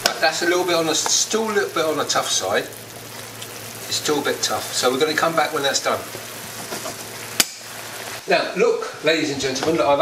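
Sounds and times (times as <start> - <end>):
vegetables sizzling in a frying pan: 0.0 - 10.0.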